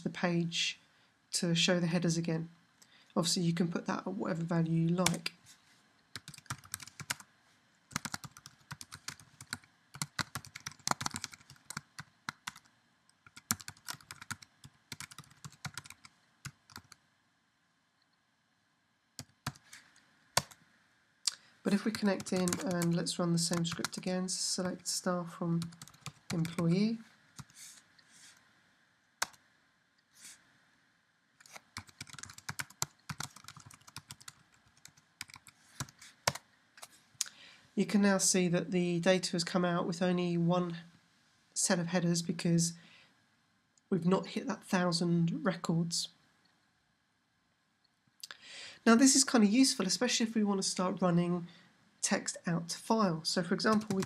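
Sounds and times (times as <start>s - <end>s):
typing on a computer keyboard: 6.2s - 7.2s, 7.9s - 12.7s, 13.3s - 17.0s, 19.2s - 19.6s, 20.4s - 20.6s, 21.9s - 24.0s, 25.6s - 26.7s, 31.4s - 36.4s, 53.7s - 54.0s.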